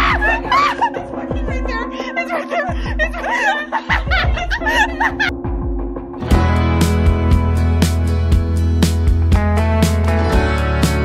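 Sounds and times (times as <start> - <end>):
background music with bass: 0.0 - 2.0, 3.9 - 11.0
women giggling and laughing: 0.0 - 5.4.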